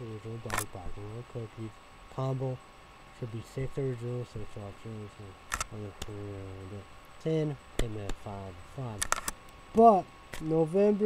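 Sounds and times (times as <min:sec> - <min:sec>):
man talking: 0:00.0 - 0:02.6, 0:03.2 - 0:09.1, 0:09.7 - 0:11.0
sharp clicks: 0:00.5 - 0:00.7, 0:05.5 - 0:06.2, 0:09.0 - 0:09.6.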